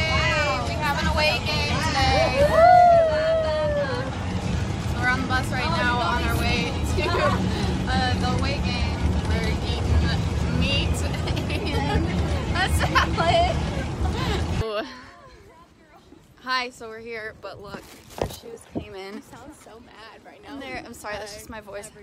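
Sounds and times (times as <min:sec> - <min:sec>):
bus engine rumble: 0:00.0 - 0:16.4.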